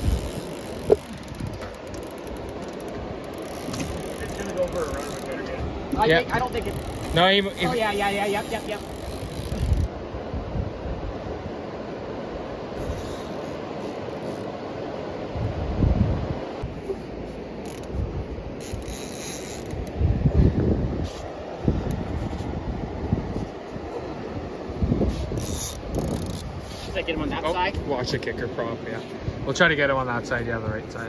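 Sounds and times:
fishing reel winding: 0:00.0 - 0:05.5, 0:06.3 - 0:09.9, 0:18.6 - 0:19.8, 0:25.4 - 0:26.5
river rushing: 0:00.0 - 0:20.0.

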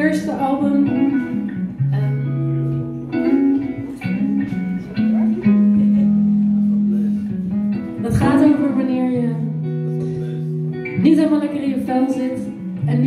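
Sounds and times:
guitar and bass playing slowly: 0:00.0 - 0:13.0.

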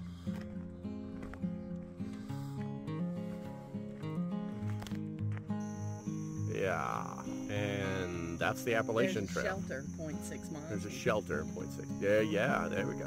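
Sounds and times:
low background melody: 0:00.0 - 0:13.0.

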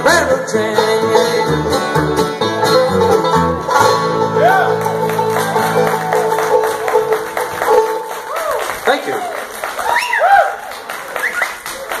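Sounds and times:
people whooping: 0:04.4 - 0:07.0, 0:07.9 - 0:11.9
small audience clapping: 0:04.6 - 0:12.0.

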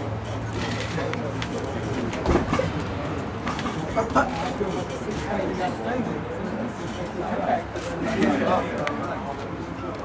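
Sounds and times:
indistinct background voices: 0:00.0 - 0:10.0.

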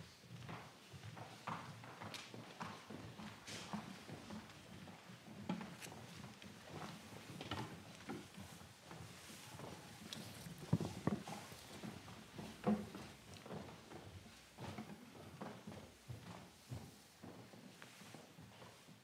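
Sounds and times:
faint rustle of people: 0:00.0 - 0:19.0
footsteps of people walking: 0:00.0 - 0:19.0.

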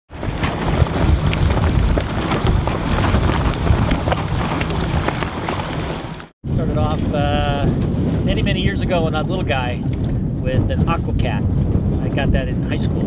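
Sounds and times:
scattered crackles: 0:00.1 - 0:06.3
water rushing past: 0:00.1 - 0:06.3
wind buffeting microphone: 0:00.1 - 0:13.0.

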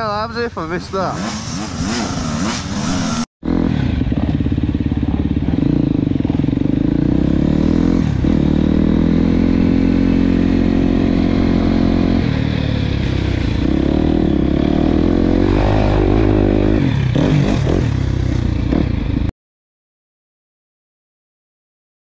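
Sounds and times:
dirt bike engine running: 0:01.2 - 0:19.3.

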